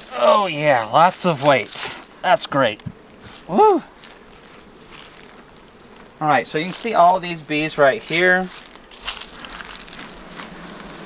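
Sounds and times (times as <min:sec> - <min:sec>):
bees buzzing in hive: 0:00.0 - 0:11.0.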